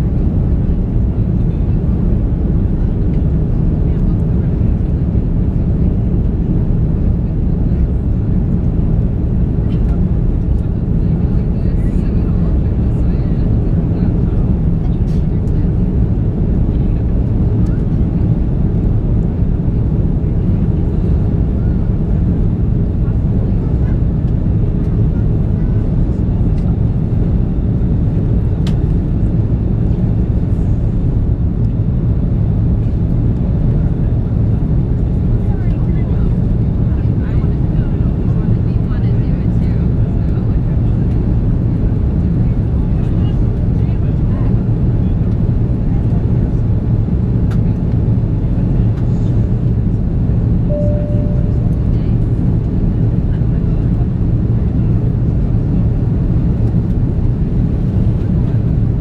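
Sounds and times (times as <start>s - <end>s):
airplane cabin engine rumble: 0.0s - 59.0s
faint tone: 50.7s - 52.2s.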